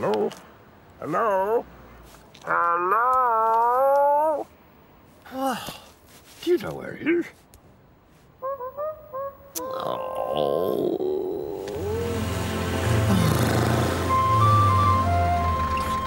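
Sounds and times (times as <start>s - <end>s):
music with low bass notes: 11.7s - 16.0s.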